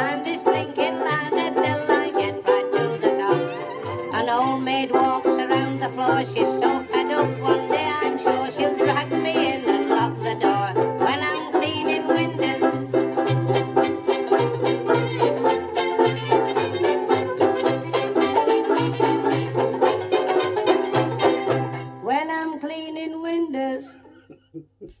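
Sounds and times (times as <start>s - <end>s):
banjo ukulele strumming: 0.0s - 22.4s.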